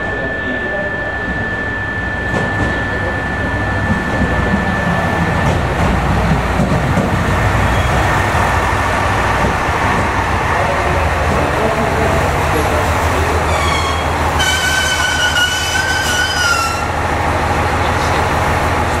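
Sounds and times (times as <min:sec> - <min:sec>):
thin high whine: 0:00.0 - 0:05.7
train engines and wheels rumbling: 0:00.0 - 0:19.0.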